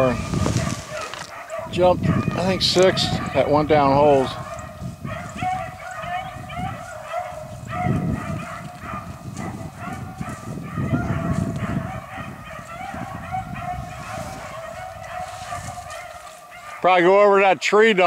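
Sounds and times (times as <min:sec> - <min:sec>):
dogs baying and barking: 0:00.0 - 0:17.4.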